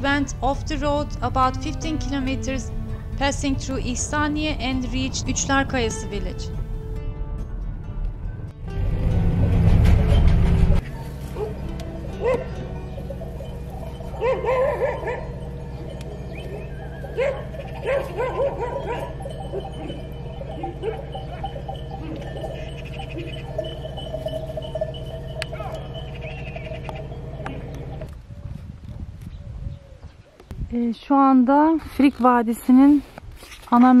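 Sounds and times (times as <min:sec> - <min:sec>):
car engine idling: 0:00.4 - 0:07.0, 0:08.7 - 0:28.1.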